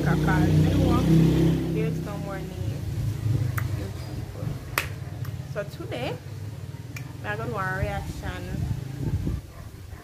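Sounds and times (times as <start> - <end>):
finger snaps: 6.9 - 7.2.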